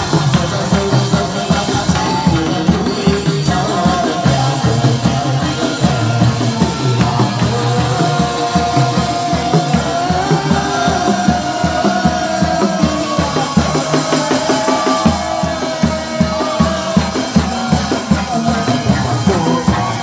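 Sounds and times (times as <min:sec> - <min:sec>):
ritual music over loudspeakers: 0:00.0 - 0:20.0.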